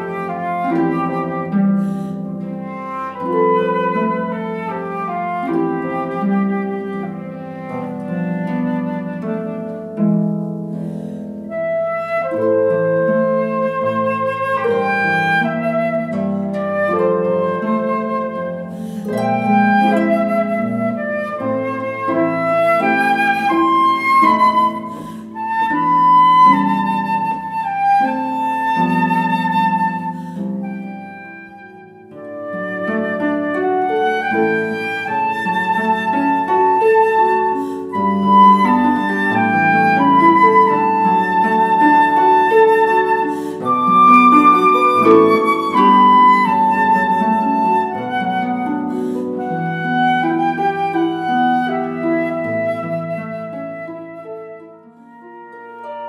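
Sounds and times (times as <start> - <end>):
flute melody: 0.0 - 56.0
harp arpeggios: 0.0 - 56.0.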